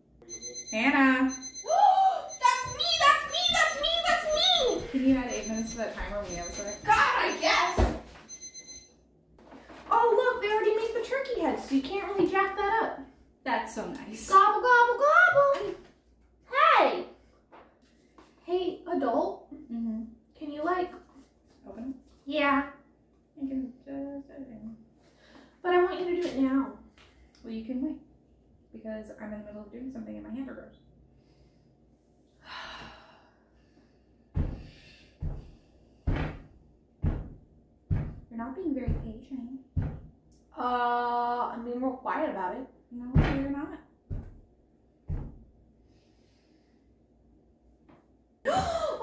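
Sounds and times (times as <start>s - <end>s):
electronic timer beep: 0.2s - 3.5s, 4.2s - 9.0s
woman sighing: 32.4s - 33.3s.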